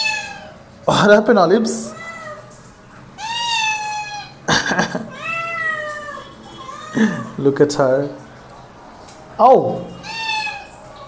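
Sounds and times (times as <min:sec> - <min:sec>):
cats meowing: 0:00.0 - 0:00.6, 0:01.8 - 0:07.6, 0:09.8 - 0:11.0.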